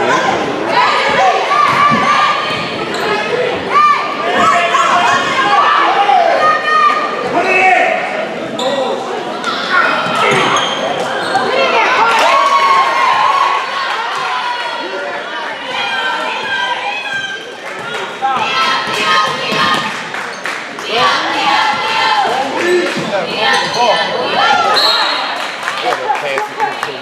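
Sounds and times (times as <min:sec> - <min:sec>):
people shouting in a gym: 0:00.0 - 0:20.1, 0:20.8 - 0:25.4.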